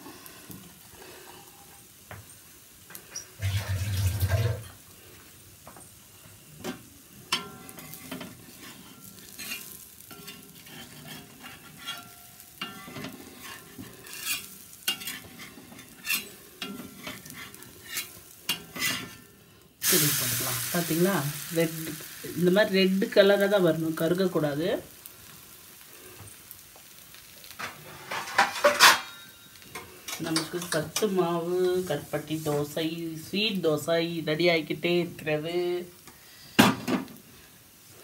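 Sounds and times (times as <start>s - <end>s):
batter sizzling in oil: 0.0s - 38.0s.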